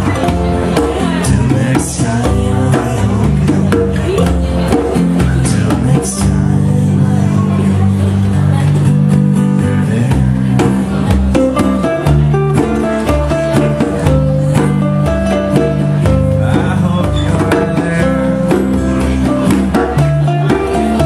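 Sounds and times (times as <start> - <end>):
acoustic guitars playing: 0.0 - 21.0
hand drum beat: 0.0 - 21.0.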